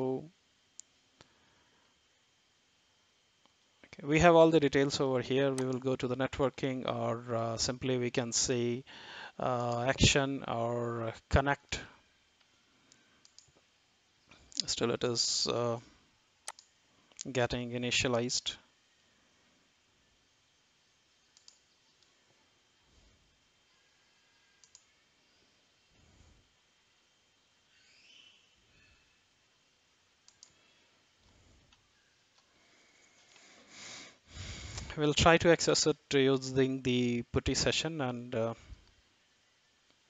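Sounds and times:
faint ticks: 0:12.4 - 0:13.7, 0:16.4 - 0:17.3, 0:21.2 - 0:22.2, 0:24.6 - 0:24.9
computer mouse clicks: 0:13.2 - 0:13.6, 0:16.4 - 0:17.3, 0:21.2 - 0:22.1, 0:24.6 - 0:25.0, 0:30.2 - 0:30.6.

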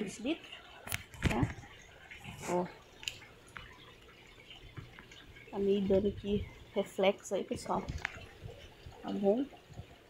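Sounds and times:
water drips into tank: 0:00.0 - 0:10.0.

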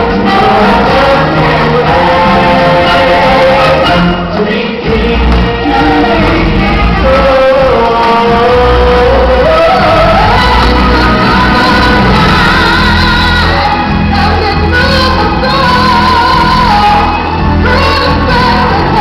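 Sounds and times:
choir singing: 0:00.0 - 0:19.0
deep bass notes: 0:00.0 - 0:19.0
loud backing music: 0:00.0 - 0:19.0.

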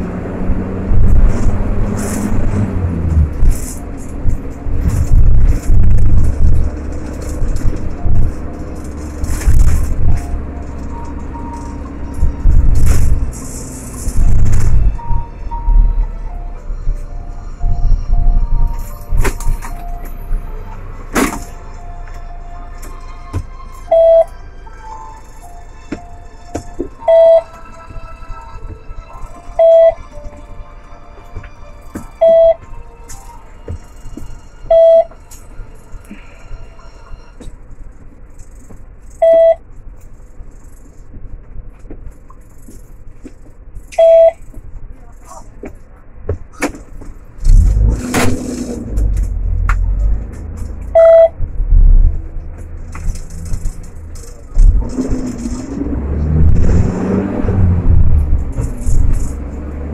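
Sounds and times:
engine and road rumble: 0:00.0 - 0:59.9
engine idle hum: 0:00.0 - 0:59.9
short electronic beep: 0:14.3 - 0:20.8, 0:23.9 - 0:24.3, 0:27.0 - 0:27.5, 0:29.6 - 0:30.0, 0:32.2 - 0:32.6, 0:34.7 - 0:35.1, 0:39.2 - 0:39.6, 0:44.0 - 0:44.4, 0:50.9 - 0:51.4.

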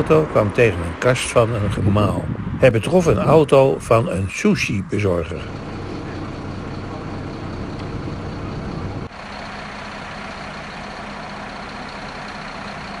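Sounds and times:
truck engine idling: 0:00.0 - 0:13.0.

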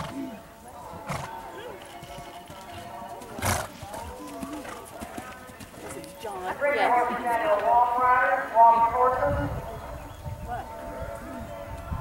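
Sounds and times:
horse snorting: 0:00.0 - 0:00.4, 0:03.4 - 0:03.8
people talking: 0:00.0 - 0:11.9.

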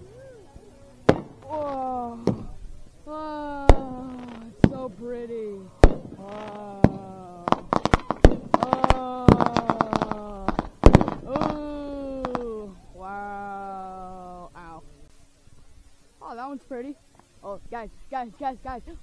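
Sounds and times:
onlookers oohing: 0:00.0 - 0:02.5, 0:06.2 - 0:14.6
fireworks bangs and crackling: 0:01.0 - 0:12.9.

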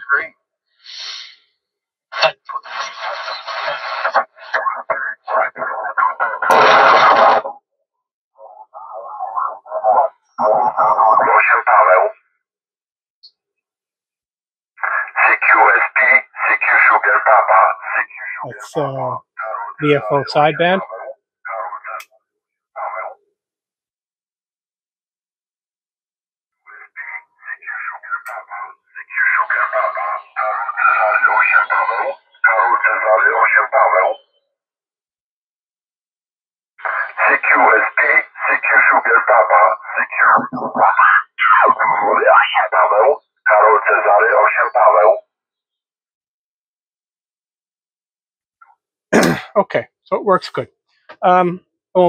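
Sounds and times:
radio voice transmissions: 0:02.2 - 0:07.5, 0:08.4 - 0:12.2, 0:14.8 - 0:22.1, 0:22.8 - 0:23.2, 0:26.6 - 0:34.3, 0:36.8 - 0:45.2, 0:49.2 - 0:50.6.

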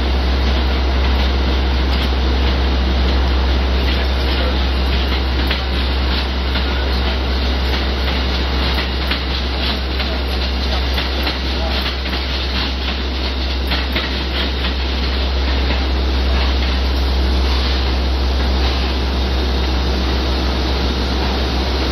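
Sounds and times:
constant low rumble: 0:00.0 - 0:21.9
passenger train passing: 0:00.0 - 0:21.9
wheels clicking over rail joints: 0:00.4 - 0:19.0.

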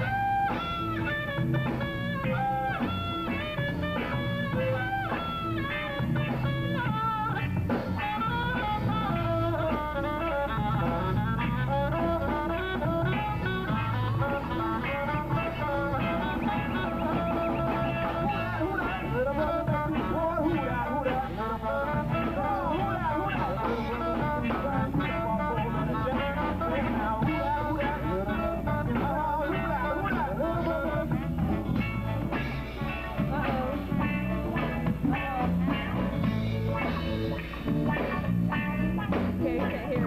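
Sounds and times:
drum kit: 0:00.0 - 0:40.0
guitar: 0:00.0 - 0:40.0
saxophone: 0:00.0 - 0:40.0.

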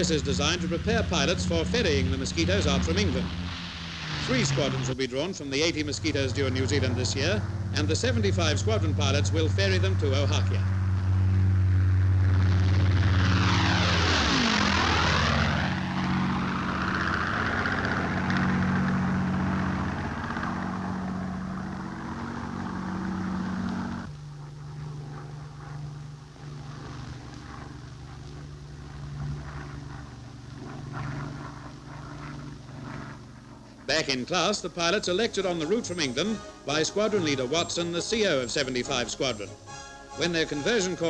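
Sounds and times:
aircraft engines droning overhead: 0:00.0 - 0:41.0.

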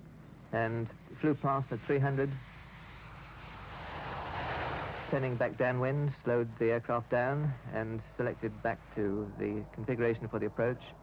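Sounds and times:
jet aircraft flypast rushing: 0:00.3 - 0:09.8.

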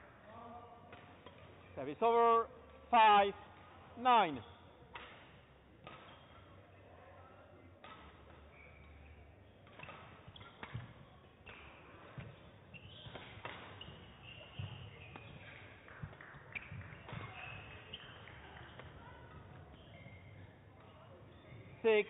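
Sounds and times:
shoes squeaking on court: 0:04.2 - 0:06.7, 0:07.9 - 0:22.0
racket striking shuttlecock: 0:04.9 - 0:06.2, 0:09.6 - 0:14.0, 0:14.6 - 0:19.4.

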